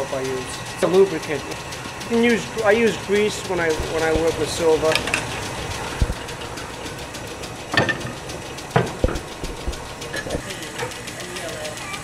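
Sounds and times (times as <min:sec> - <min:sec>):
metal-spinning lathe running: 0:00.0 - 0:12.0
sharp knocks: 0:05.0 - 0:10.4.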